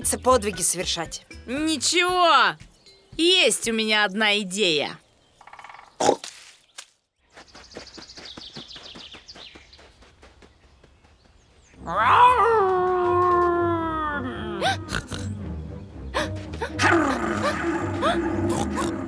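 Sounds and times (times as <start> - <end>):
cartoon wolf howl: 11.8 - 14.6, 16.8 - 19.0.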